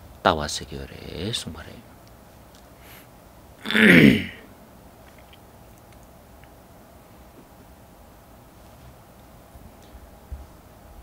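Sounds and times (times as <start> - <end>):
man clearing his throat: 3.6 - 4.5.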